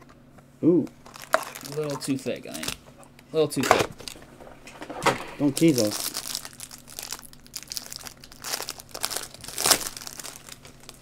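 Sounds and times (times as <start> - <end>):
card pack wrappers crinkling: 1.0 - 2.8, 5.4 - 11.0.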